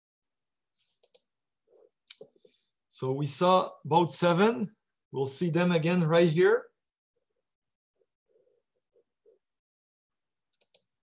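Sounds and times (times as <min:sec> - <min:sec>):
computer mouse clicks: 0:01.0 - 0:01.3, 0:10.5 - 0:10.9.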